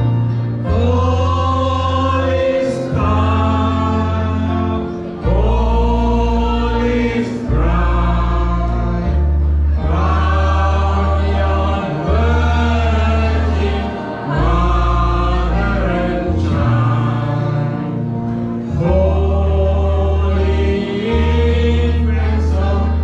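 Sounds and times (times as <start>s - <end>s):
amplified backing music: 0.0s - 23.0s
group singing into microphones: 0.0s - 23.0s.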